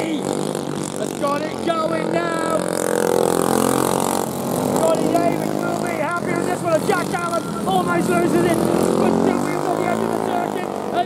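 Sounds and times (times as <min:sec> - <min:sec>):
commentator speaking: 0:00.0 - 0:00.4, 0:01.0 - 0:02.8, 0:04.7 - 0:11.0
distant karts: 0:00.0 - 0:11.0
kart engine passing by: 0:00.0 - 0:11.0.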